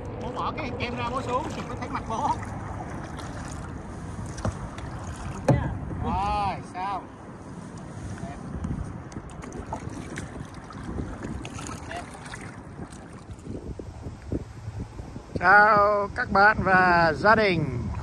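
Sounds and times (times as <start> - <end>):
paddle splashing water: 0.0 - 6.2, 7.3 - 14.3
wind buffeting microphone: 0.0 - 18.0.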